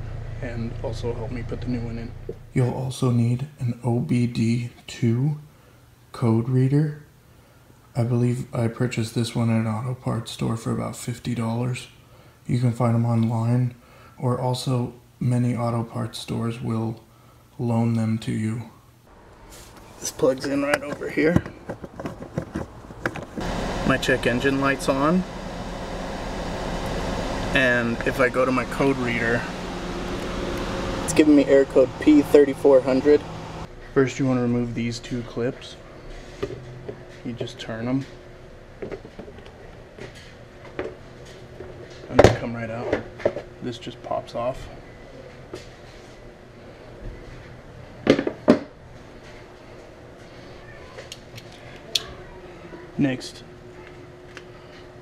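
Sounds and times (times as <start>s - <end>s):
car engine idling: 19.1s - 33.7s
plastic cover knocking: 20.8s - 23.4s.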